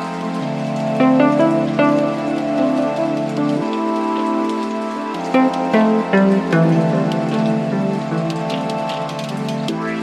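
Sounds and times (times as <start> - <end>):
soft rain-like patter: 0.0 - 10.0
synth pad chords: 0.0 - 10.0.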